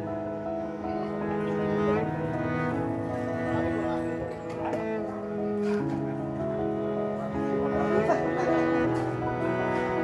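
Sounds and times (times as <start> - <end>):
bowed string music: 0.0 - 10.0.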